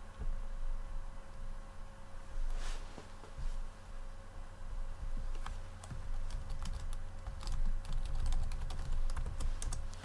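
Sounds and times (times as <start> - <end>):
low steady hum: 0.0 - 10.0
keyboard typing clicks: 5.3 - 10.0.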